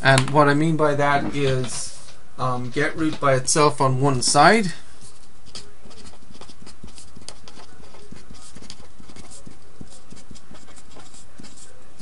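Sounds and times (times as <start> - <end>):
low background hum: 0.0 - 12.0
pen scratching on paper: 5.0 - 12.0.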